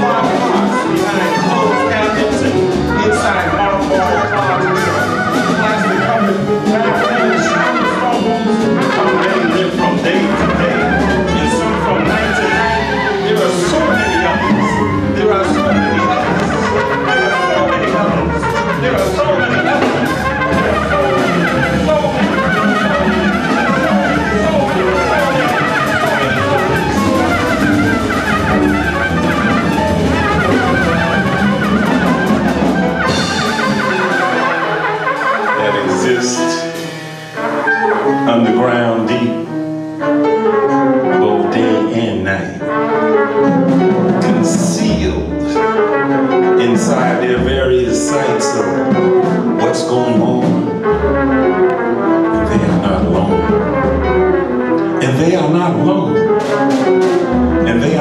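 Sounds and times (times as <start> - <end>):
plucked upright bass: 0.0 - 36.9, 43.4 - 58.0
horn playing fast line: 0.0 - 58.0
live jazz band: 0.0 - 58.0
plucked bass line: 46.6 - 58.0.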